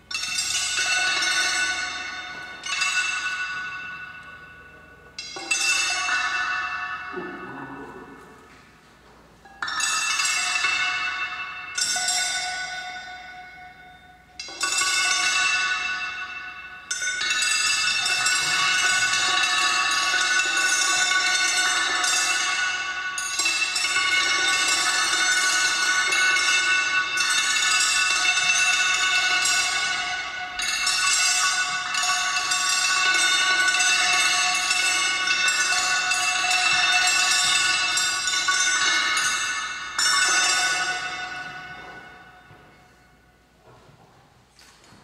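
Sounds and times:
bell-like metallic tones ringing: 0.0s - 8.7s, 9.4s - 43.6s.

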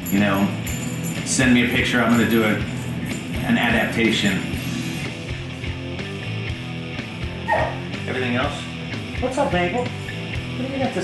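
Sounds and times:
background music: 0.0s - 11.0s
dog barking: 7.4s - 7.9s.

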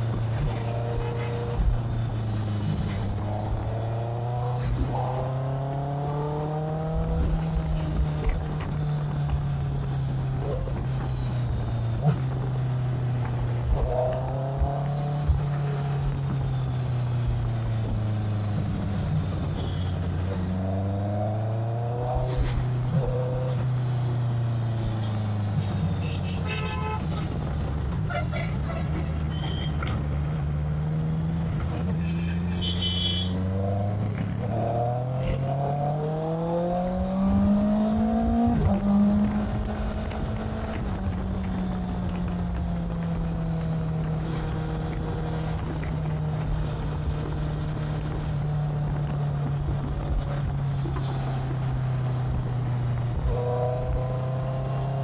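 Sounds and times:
wind noise on microphone: 0.0s - 23.8s, 24.5s - 30.6s, 33.4s - 55.0s
vehicle horns honking: 0.8s - 1.6s, 25.9s - 27.4s, 28.1s - 29.9s, 32.0s - 33.4s
motorcycle engine running: 6.6s - 27.9s, 36.7s - 55.0s.

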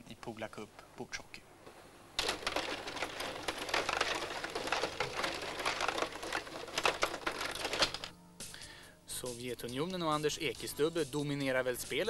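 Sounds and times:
plastic players and puck clicking: 2.2s - 8.1s
table hockey rods clattering: 2.2s - 8.1s.

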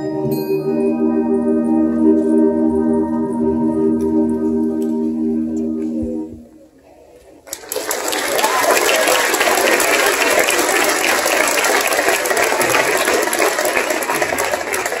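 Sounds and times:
audience applause: 7.4s - 15.0s.

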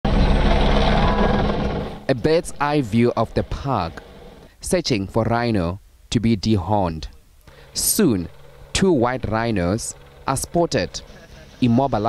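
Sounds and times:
helicopter flying overhead: 0.1s - 4.5s, 7.5s - 12.0s.

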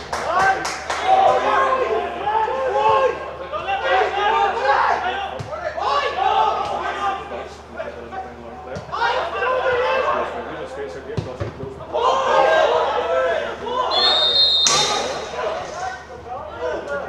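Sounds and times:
players shouting: 0.2s - 7.7s, 8.8s - 10.6s, 11.9s - 17.0s.

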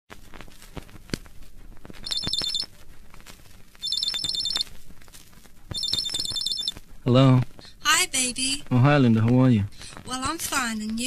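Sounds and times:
vinyl record surface clicks: 0.1s - 6.9s
telephone trilling rings: 2.0s - 2.7s, 3.8s - 4.6s, 5.8s - 6.7s.

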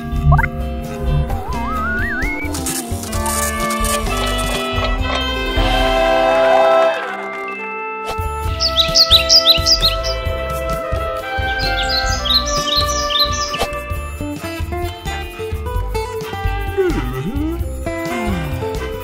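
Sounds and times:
background music with plucked guitar: 0.0s - 19.0s
sound falling and rising in pitch: 1.2s - 2.8s
high bird-like chirps: 1.3s - 2.8s, 8.4s - 10.3s, 11.4s - 13.9s.

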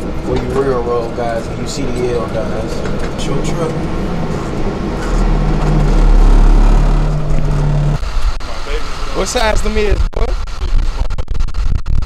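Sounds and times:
truck engine running: 0.0s - 9.9s.

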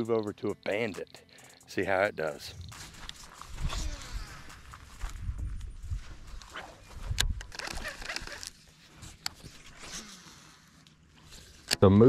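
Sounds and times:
wind rumble on microphone: 3.5s - 7.6s
rod handling noise: 6.4s - 11.8s
sharp clicks: 7.1s - 8.6s
fishing reel cranking: 7.4s - 8.5s.

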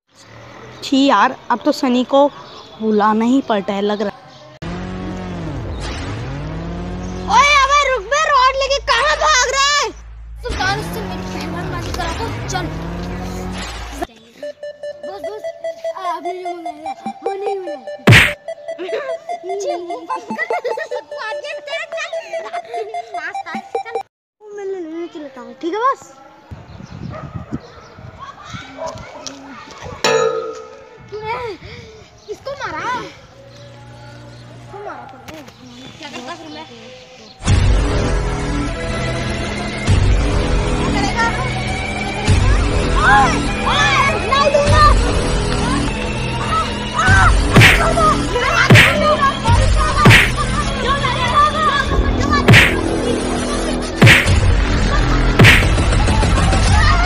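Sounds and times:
electronic hum sweeping in pitch: 4.6s - 9.2s
voices: 7.2s - 24.0s, 28.0s - 37.4s, 39.0s - 57.0s
high-pitched warbling tune: 14.4s - 24.0s
loud ringing clang: 30.1s - 31.0s.

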